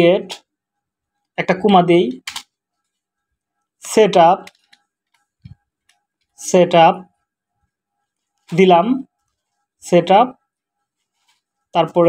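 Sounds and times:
man speaking: 0.0 - 0.4, 1.4 - 2.3, 3.8 - 4.5, 6.4 - 7.1, 8.5 - 9.1, 9.8 - 10.4, 11.8 - 12.0.

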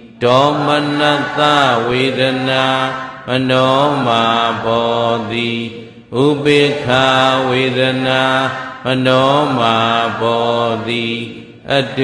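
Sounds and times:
man chanting in monotone: 0.0 - 12.0.

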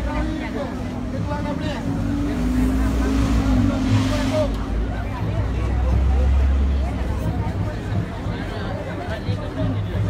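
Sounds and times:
bus engine droning: 0.0 - 8.5
crowd chatter: 0.0 - 10.0.

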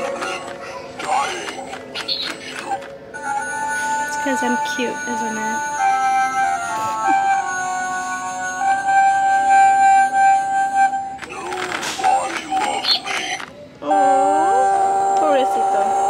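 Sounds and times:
wavering spooky tones: 0.0 - 16.0
tinny electronic tune: 3.1 - 11.2, 13.8 - 16.0.

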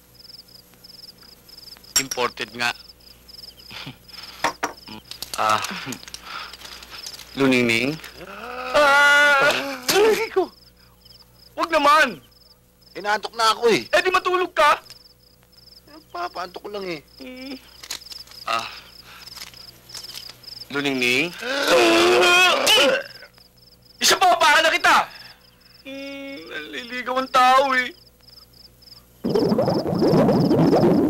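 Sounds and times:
crickets chirping: 0.0 - 31.0
sharp knocks: 4.4 - 4.8
person humming: 8.2 - 9.9, 17.2 - 17.6, 25.8 - 26.6.

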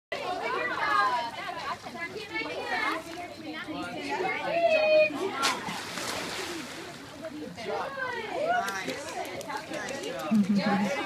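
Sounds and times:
children talking and calling out: 0.1 - 5.8, 6.6 - 11.0.

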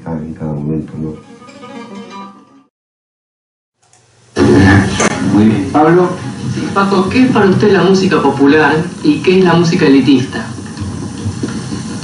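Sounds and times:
flamenco guitar playing: 0.9 - 2.7.

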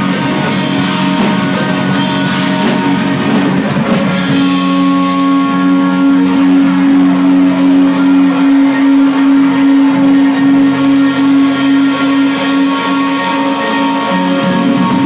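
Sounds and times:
rock band chord ringing: 0.0 - 15.0.

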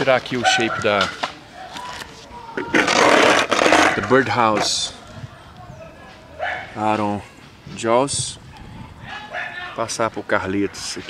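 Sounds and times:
skateboard scraping and rustling: 0.8 - 5.0.

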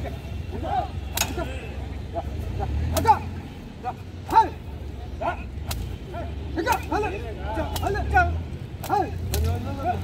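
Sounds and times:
men shouting: 0.0 - 10.0.

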